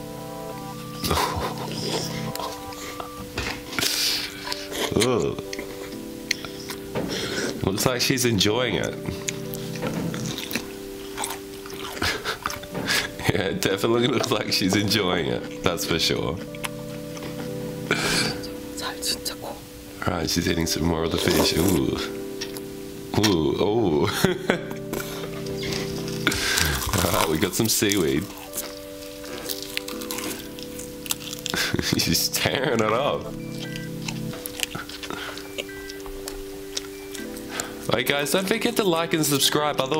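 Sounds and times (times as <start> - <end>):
soft music with held notes: 0.0 - 39.9
wet chewing and biting: 8.9 - 13.1, 16.4 - 17.5, 25.4 - 31.8, 33.4 - 37.8.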